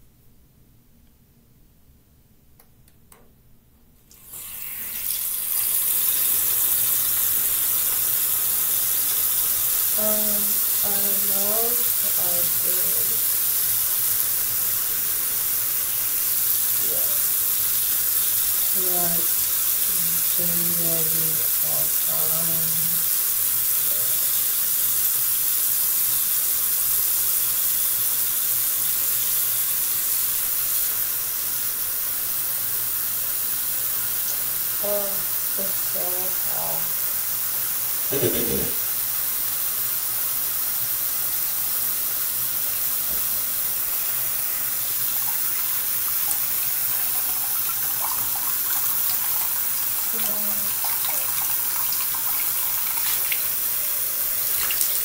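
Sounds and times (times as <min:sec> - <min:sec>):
sink tap running: 0:04.1 - 0:55.0.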